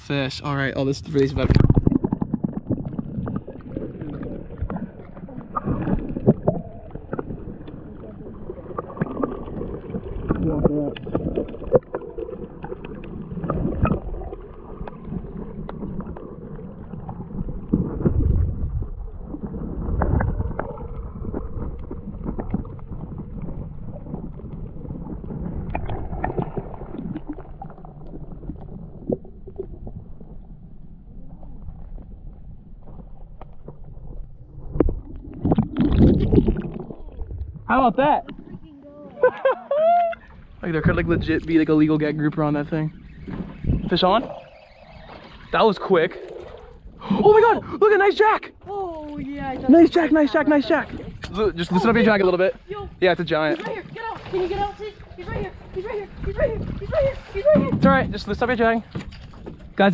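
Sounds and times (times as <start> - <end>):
muffled water sloshing underwater: 0.0 - 59.9
low thuds in water: 1.1 - 16.2, 17.0 - 30.4, 50.7 - 59.9.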